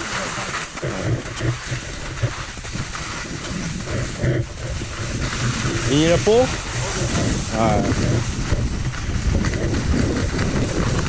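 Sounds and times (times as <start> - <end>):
skis hissing on slushy snow: 0.0 - 11.0
wind rumble on microphone: 0.0 - 11.0.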